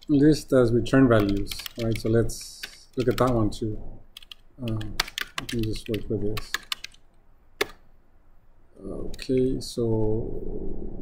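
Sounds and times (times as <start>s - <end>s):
keyboard keystroke: 1.2s - 2.0s, 4.2s - 7.0s.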